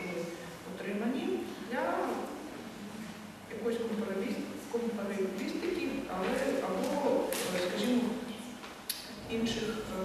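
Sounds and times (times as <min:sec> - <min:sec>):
woman speaking into microphone: 0:00.0 - 0:02.5, 0:03.5 - 0:10.0.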